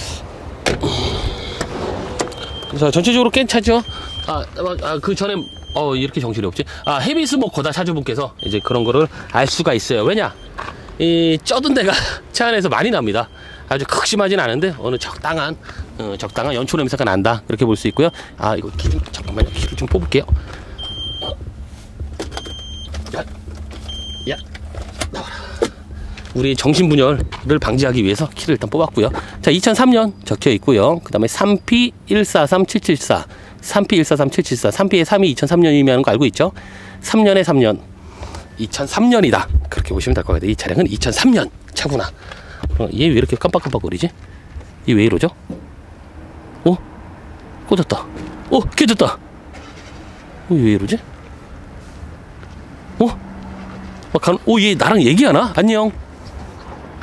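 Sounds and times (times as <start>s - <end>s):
car door slamming: 0.6s - 3.0s.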